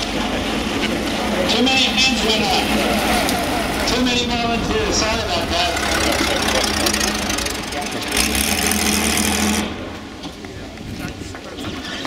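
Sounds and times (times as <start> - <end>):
race car engine running: 0.0 - 11.8.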